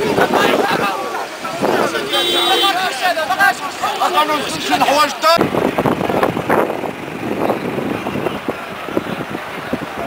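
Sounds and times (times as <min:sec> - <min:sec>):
outdoor crowd noise: 0:00.0 - 0:10.0
road traffic: 0:00.0 - 0:10.0.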